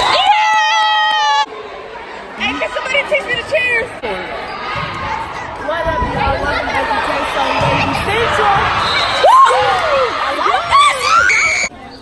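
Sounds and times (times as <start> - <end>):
crowd chatter: 1.4 - 12.0.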